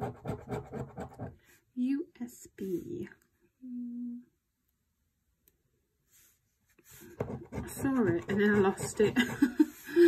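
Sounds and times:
woman humming: 3.6s - 4.4s
soft scrape: 6.0s - 7.2s.

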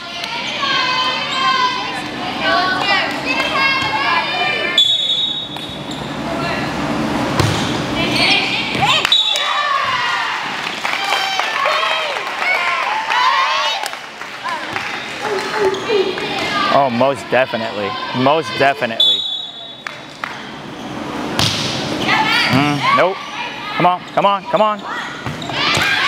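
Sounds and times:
people calling and shouting: 0.0s - 6.8s
volleyball being struck: 7.3s - 7.8s, 21.3s - 21.8s.

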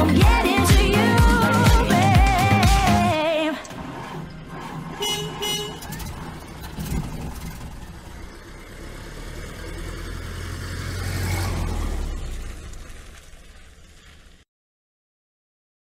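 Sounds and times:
motor vehicle rumble: 0.0s - 14.5s.

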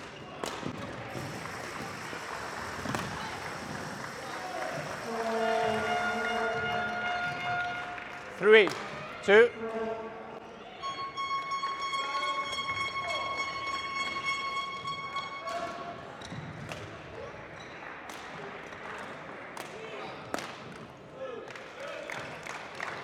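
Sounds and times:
steady high tone: 10.8s - 15.6s.

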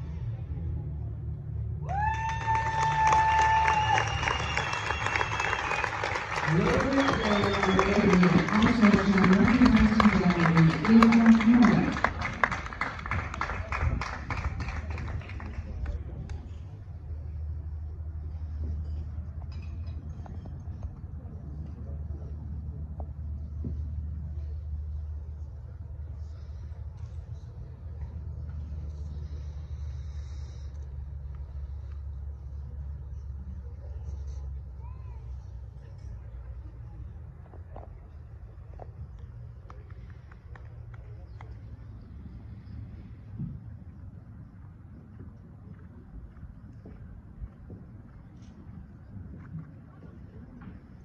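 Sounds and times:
low rumble: 0.0s - 2.8s
spectators clapping: 1.9s - 16.0s
faint voices: 5.3s - 19.4s.

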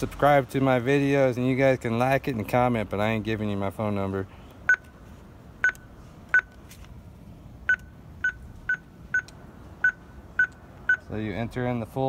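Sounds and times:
keypad beeps: 4.7s - 4.9s, 5.6s - 6.5s, 7.7s - 11.1s.

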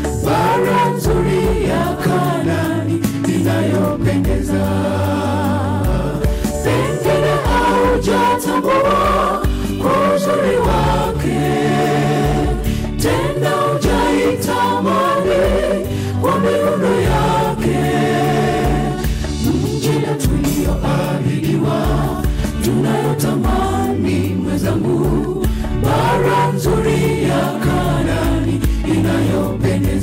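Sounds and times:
choir singing gospel song: 0.0s - 30.0s
regular beat: 0.3s - 29.4s
low bass line: 1.1s - 16.0s.

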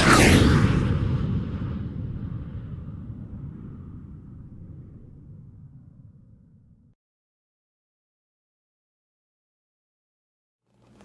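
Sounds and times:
low rumbling fly-by whoosh: 0.0s - 6.9s.

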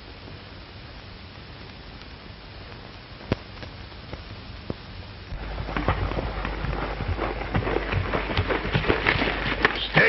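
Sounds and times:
horse hoofbeats on dirt: 5.3s - 10.0s
low soundtrack hum: 5.3s - 10.0s.

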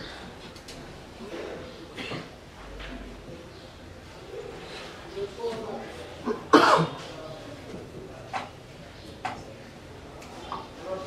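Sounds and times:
person coughing loudly: 6.2s - 7.0s.

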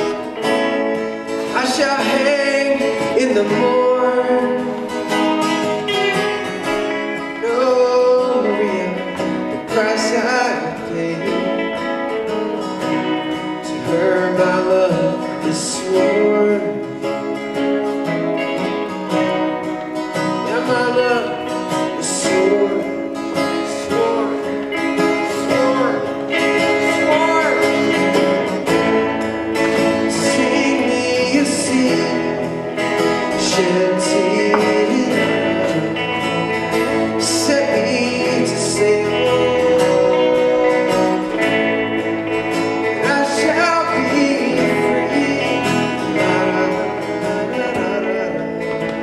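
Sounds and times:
man singing: 0.0s - 12.4s, 13.4s - 19.0s, 19.7s - 49.0s
electric guitar: 0.0s - 49.0s
strummed acoustic guitar: 0.0s - 49.0s.

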